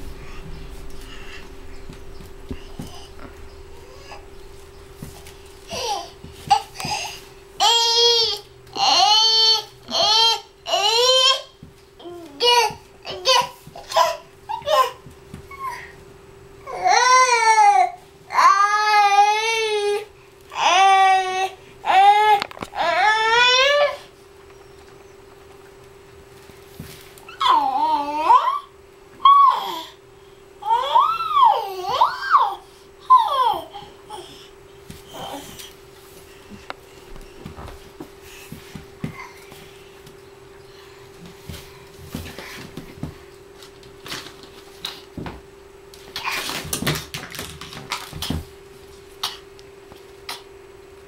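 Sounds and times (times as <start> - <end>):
steady hum: 0.0 - 51.0.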